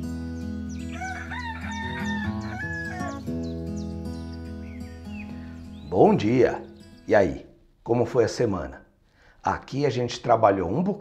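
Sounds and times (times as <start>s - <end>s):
background music with held chords: 0.0s - 7.2s
small birds chirping: 0.0s - 8.0s
rooster crowing: 0.8s - 3.3s.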